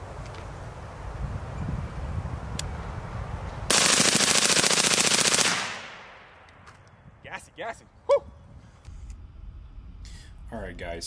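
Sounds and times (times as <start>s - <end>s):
suppressed rifle rapid shots: 3.7s - 6.4s.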